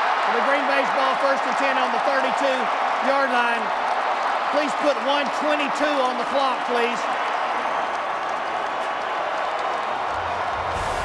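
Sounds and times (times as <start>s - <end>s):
stadium crowd din: 0.0s - 11.0s
low rumble: 10.2s - 11.0s
whoosh: 10.2s - 11.0s.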